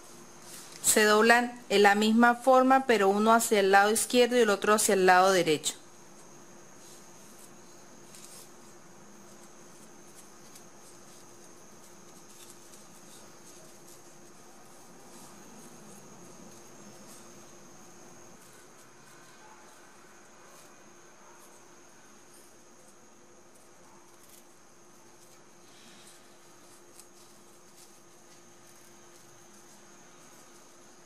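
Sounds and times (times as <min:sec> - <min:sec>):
ribbon rustling: 0:00.0 - 0:02.7, 0:03.4 - 0:31.0.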